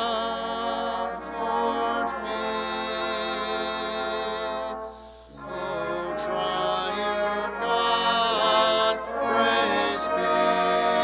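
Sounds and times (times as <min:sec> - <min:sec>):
choir singing slow hymn: 0:00.0 - 0:11.0.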